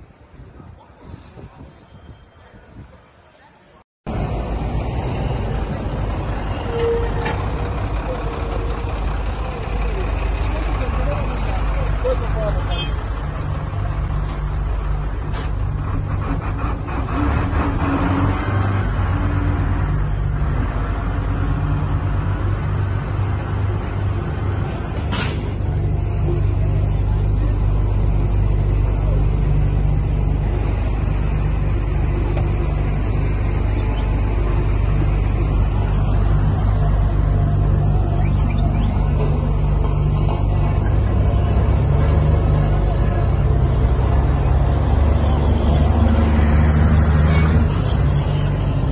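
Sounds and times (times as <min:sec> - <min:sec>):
diesel engine running: 0:04.1 - 0:48.9.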